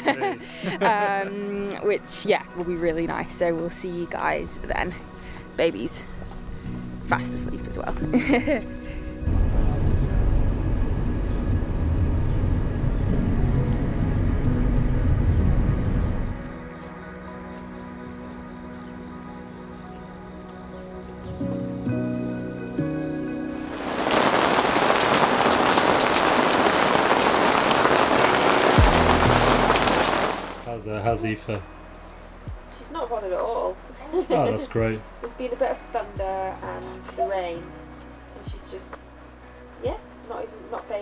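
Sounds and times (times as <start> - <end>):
background music with held chords: 0.0 - 25.1, 28.6 - 41.0
low rumble: 8.9 - 16.5, 23.6 - 30.7
heavy rain: 23.6 - 30.8.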